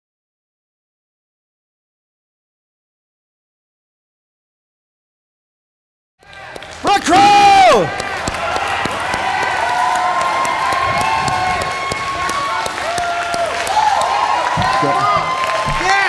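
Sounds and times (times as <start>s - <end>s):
audience clapping and cheering: 6.2s - 16.0s
loud shout falling in pitch: 6.8s - 16.0s
voices whooping: 6.9s - 16.0s.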